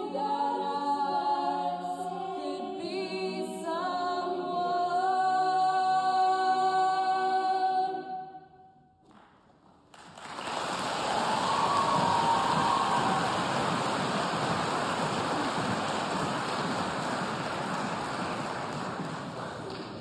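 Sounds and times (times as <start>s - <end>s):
audience applauding: 9.1s - 20.0s.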